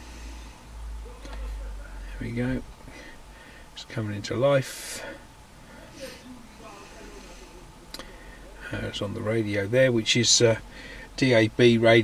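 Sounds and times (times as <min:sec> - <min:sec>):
faint voice: 0:05.0 - 0:08.8.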